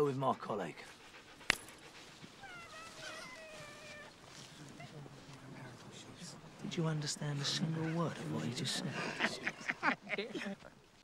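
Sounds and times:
dog whining: 2.4 - 4.2.

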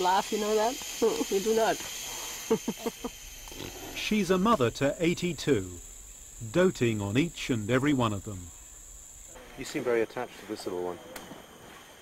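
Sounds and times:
baby orangutan grunting: 3.5 - 4.0.

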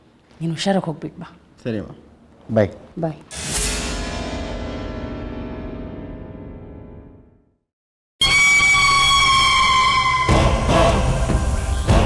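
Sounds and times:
high held tone sting: 3.3 - 7.5.

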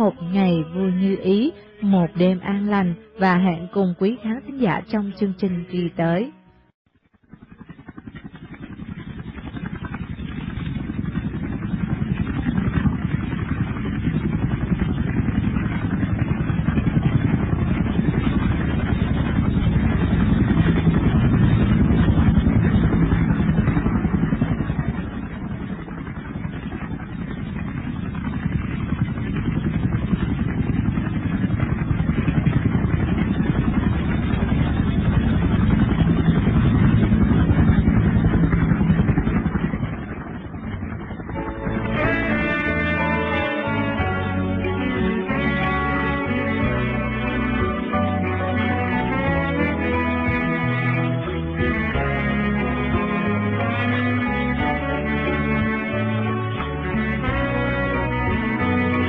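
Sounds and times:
pulsing engine noise: 0.0 - 59.0.

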